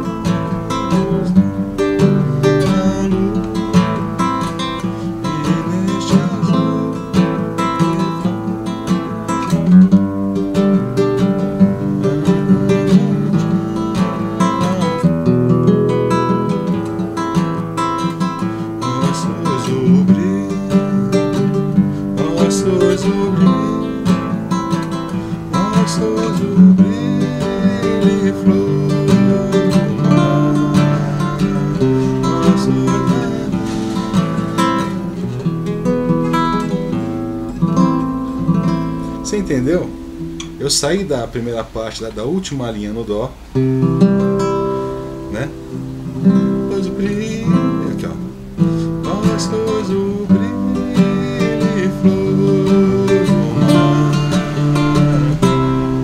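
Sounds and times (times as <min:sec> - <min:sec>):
nylon-string guitar strumming: 0:00.0 - 0:56.0.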